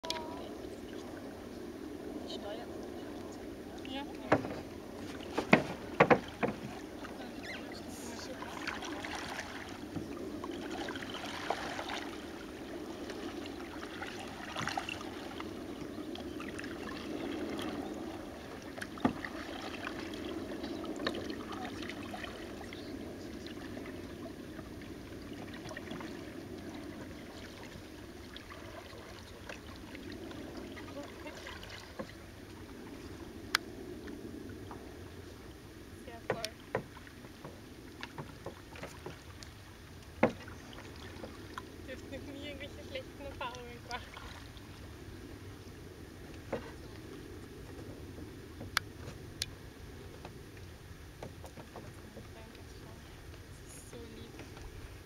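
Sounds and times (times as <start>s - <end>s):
water lapping against canoe hull: 0.0s - 55.0s
knocks on boat: 4.2s - 6.8s, 36.2s - 39.2s, 40.2s - 40.5s.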